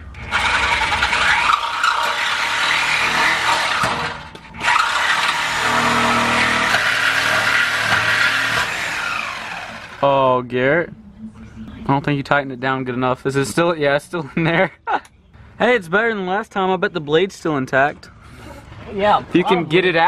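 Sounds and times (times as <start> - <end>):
reciprocating saw cutting metal pipe: 0.2 - 10.0.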